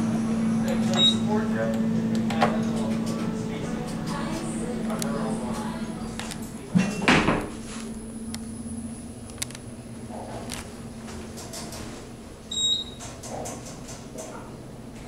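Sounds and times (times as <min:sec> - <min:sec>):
elevator doors closing with thud: 0:00.0 - 0:15.0
low elevator hum: 0:00.0 - 0:15.0.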